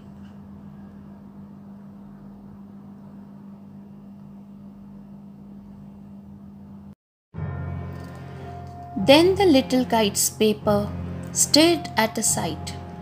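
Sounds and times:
low hum with faint hiss: 0:00.0 - 0:07.0, 0:08.6 - 0:13.0.

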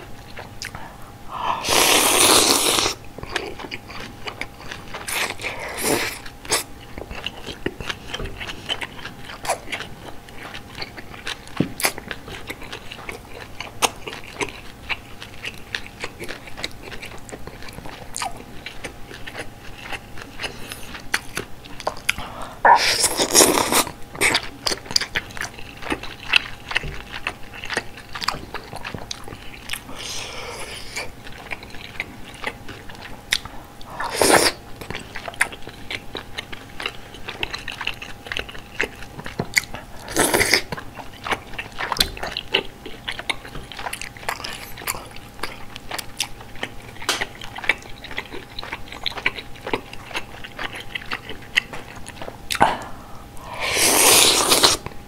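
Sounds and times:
close-miked chewing: 0:00.0 - 0:55.0
slurping noodles and soup: 0:01.4 - 0:03.0, 0:33.9 - 0:34.6, 0:53.4 - 0:54.9.

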